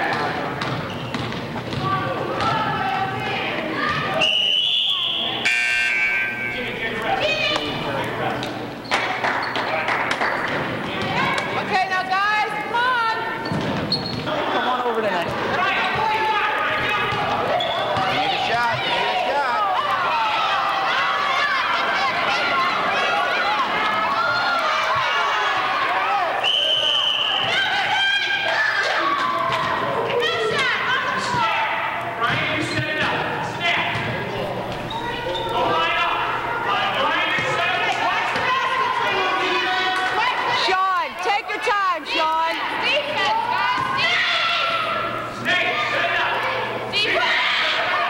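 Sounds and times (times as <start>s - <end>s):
voices talking and shouting: 0.0s - 48.0s
referee's whistle blast: 4.2s - 6.6s, 26.4s - 27.5s.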